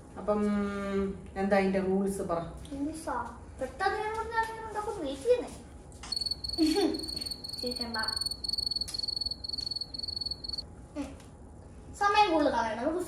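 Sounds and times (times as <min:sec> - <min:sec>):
cricket chirping: 0:06.1 - 0:10.6.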